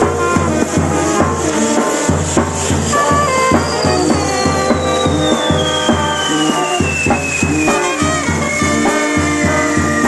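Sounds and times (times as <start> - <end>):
bass drum and cymbal beat: 0.0 - 10.0
brass band playing: 0.0 - 10.0
high falling whistle: 2.9 - 10.0.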